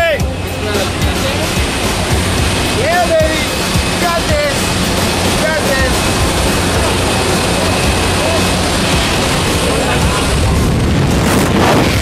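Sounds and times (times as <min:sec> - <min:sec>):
aircraft engine noise: 0:00.0 - 0:12.0
wind rushing: 0:00.3 - 0:12.0.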